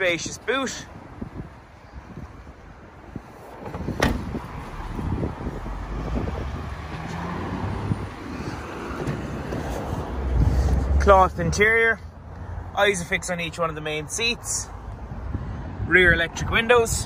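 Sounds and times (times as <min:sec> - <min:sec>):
low traffic rumble: 0:00.0 - 0:17.0
wind buffeting microphone: 0:00.9 - 0:11.6, 0:14.8 - 0:17.0
car tailgate thud: 0:03.6 - 0:04.5.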